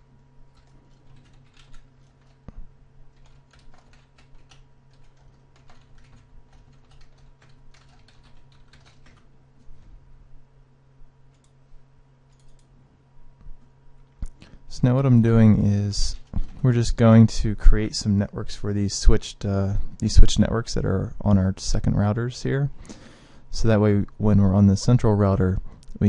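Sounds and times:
faint electrical hum: 0.0s - 26.0s
computer keyboard typing: 0.5s - 9.3s, 11.3s - 11.6s, 12.3s - 12.7s.

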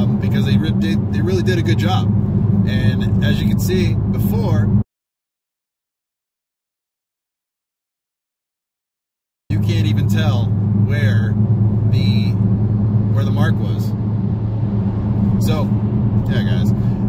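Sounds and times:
car engine low drone: 0.0s - 4.8s, 9.5s - 17.0s
road noise: 0.0s - 4.8s, 9.5s - 17.0s.

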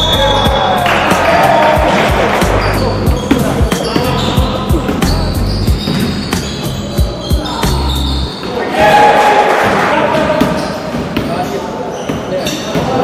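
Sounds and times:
players shouting: 0.0s - 5.2s, 7.3s - 10.7s
basketball bouncing on wooden court: 1.8s - 6.5s.

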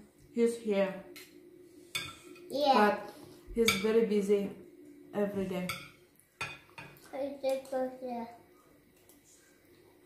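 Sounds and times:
cutlery clinking on ceramic plate: 3.6s - 3.9s.

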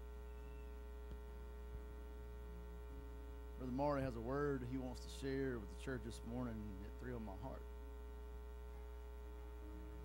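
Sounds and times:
electrical mains hum: 0.0s - 10.0s
man speaking into a microphone: 3.6s - 7.7s.

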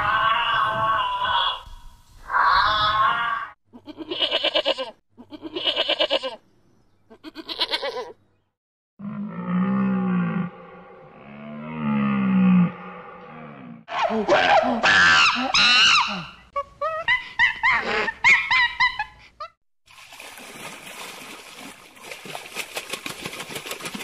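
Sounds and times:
sheep bleats: 2.9s - 6.4s, 7.1s - 8.2s.

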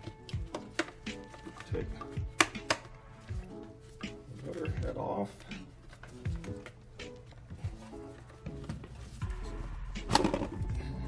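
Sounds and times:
plastic latch clips clicking: 0.1s - 3.0s
sharp plastic snap: 0.2s - 3.0s.

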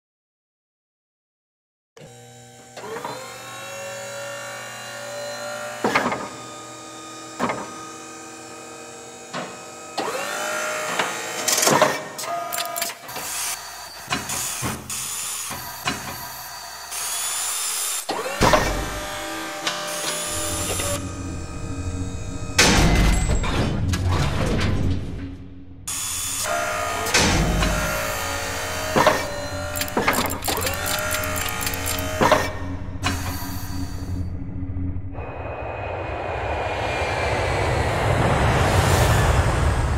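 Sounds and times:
servo motors whirring: 10.0s - 21.0s, 25.9s - 34.2s
deep rumble: 20.3s - 25.9s, 32.5s - 39.9s.

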